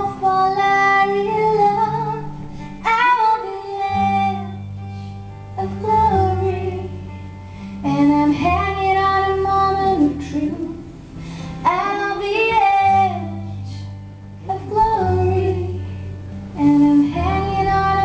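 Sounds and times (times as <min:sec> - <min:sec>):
woman singing: 0:00.0 - 0:10.9, 0:11.5 - 0:18.0
slow acoustic guitar: 0:00.0 - 0:18.0.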